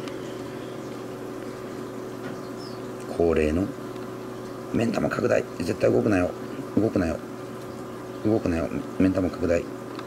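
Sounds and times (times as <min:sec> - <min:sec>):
mechanical hum with tones: 0:00.0 - 0:10.0.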